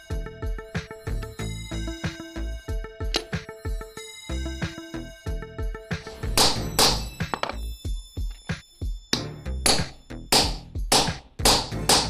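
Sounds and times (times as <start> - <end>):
background music: 0.0 - 12.0
mallet striking steel chisel: 6.2 - 7.6, 9.1 - 12.0.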